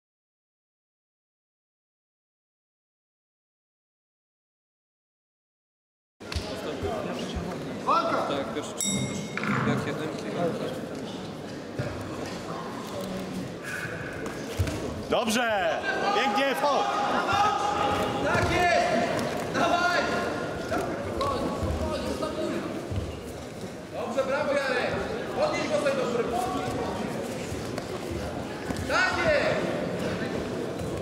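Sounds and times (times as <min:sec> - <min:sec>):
voices shouting in echoing hall: 0:15.3 - 0:22.8.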